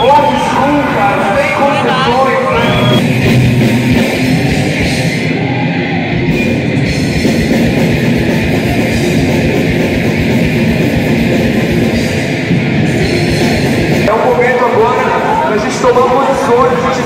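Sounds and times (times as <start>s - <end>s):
metal band distorted guitars: 0.0s - 17.0s.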